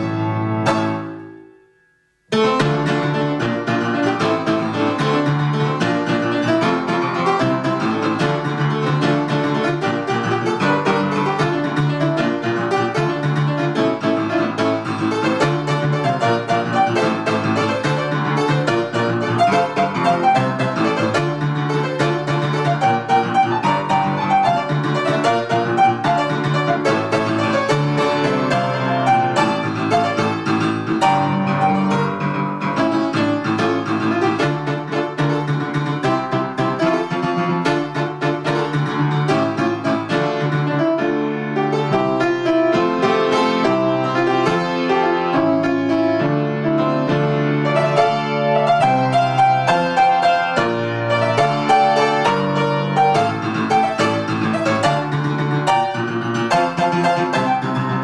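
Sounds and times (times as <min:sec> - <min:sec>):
solo grand piano: 0:00.0 - 0:58.0.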